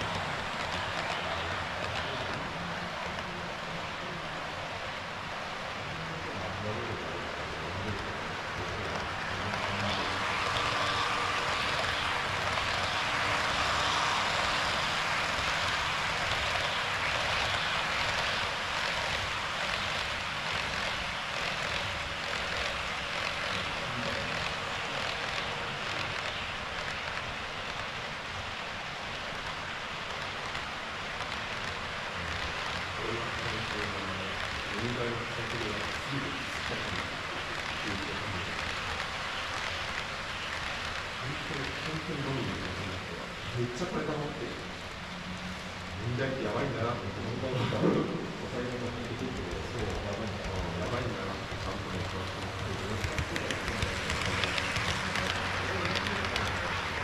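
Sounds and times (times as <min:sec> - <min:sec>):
model trains rolling on rails: 0:00.0 - 0:57.0.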